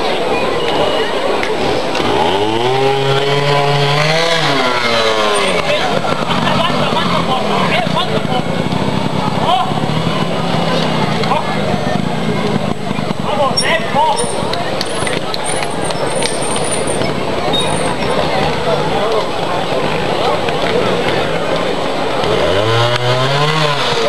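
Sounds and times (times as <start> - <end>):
crowd voices: 0.0 - 24.0
motorcycle engine revving: 1.5 - 24.0.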